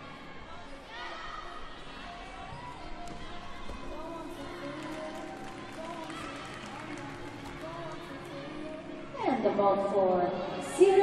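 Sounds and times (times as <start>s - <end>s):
music in a hall: 1.5s - 11.0s.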